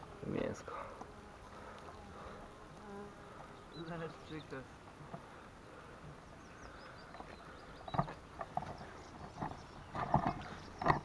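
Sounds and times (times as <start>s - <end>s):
flying insect buzzing: 0.0s - 6.0s.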